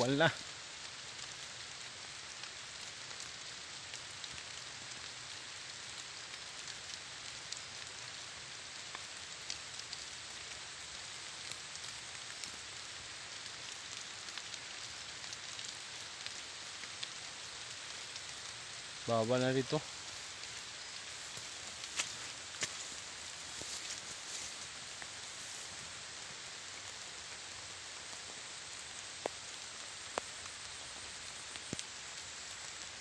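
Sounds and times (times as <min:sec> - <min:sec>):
light rain on vegetation: 0:00.0 - 0:33.0.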